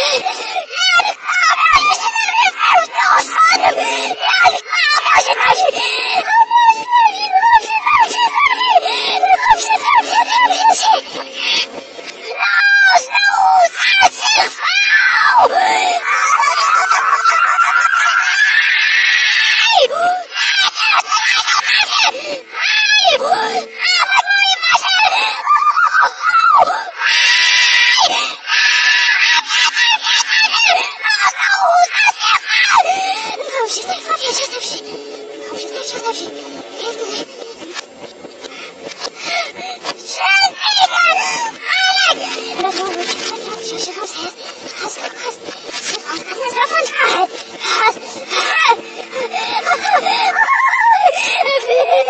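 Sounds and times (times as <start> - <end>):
reversed boy screaming: 0.0 - 37.3, 38.5 - 52.0.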